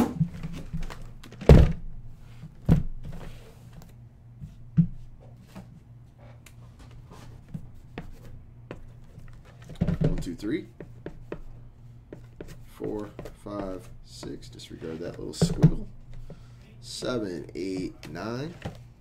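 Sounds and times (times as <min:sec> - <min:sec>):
steady low hum: 0:00.0 - 0:19.0
boxes thunking on a desk: 0:09.6 - 0:10.3, 0:15.3 - 0:16.3.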